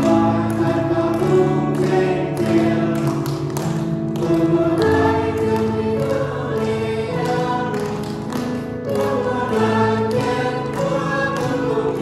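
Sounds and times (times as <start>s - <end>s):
piano accompaniment: 0.0s - 12.0s
small group singing a hymn: 0.0s - 12.0s.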